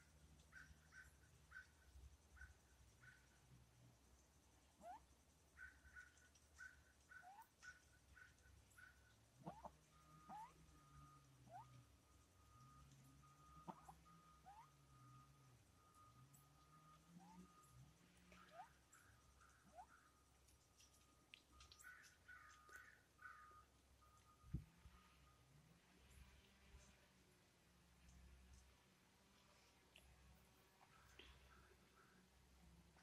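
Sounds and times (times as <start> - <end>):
faint low wavering drone: 0.0 - 33.0
faint rising chirps: 0.0 - 33.0
thin steady tone: 0.0 - 33.0.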